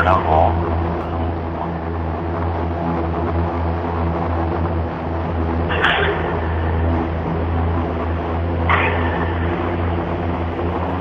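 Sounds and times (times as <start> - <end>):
electric propellers humming: 0.0 - 11.0.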